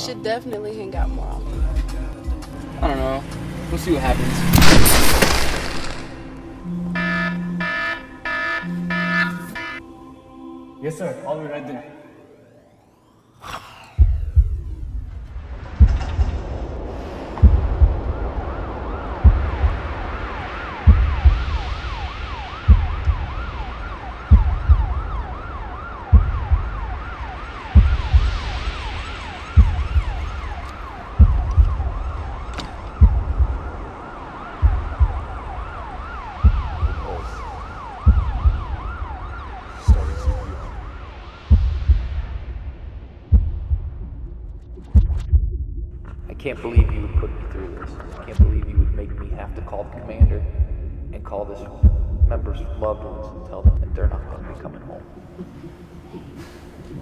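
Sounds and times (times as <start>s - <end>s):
siren wailing: 3.2s - 9.9s, 11.8s - 16.2s, 17.4s - 42.6s
deep thump: 4.2s - 6.5s, 14.0s - 18.5s, 31.2s - 33.7s, 38.0s - 39.0s.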